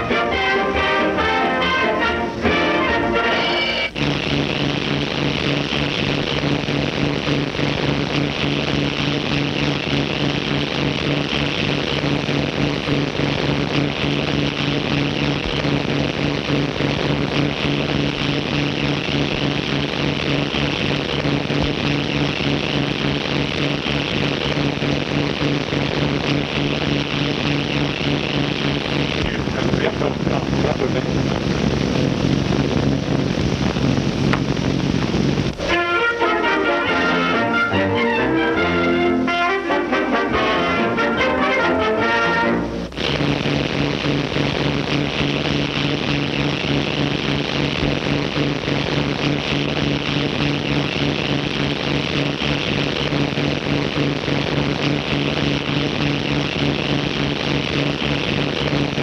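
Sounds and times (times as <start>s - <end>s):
engine drone: 0.0s - 59.0s
film soundtrack hiss: 0.0s - 59.0s.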